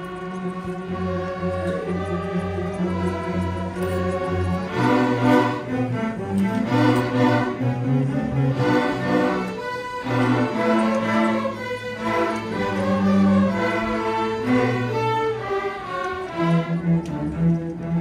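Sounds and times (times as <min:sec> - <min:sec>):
string orchestra playing: 0:00.0 - 0:18.0.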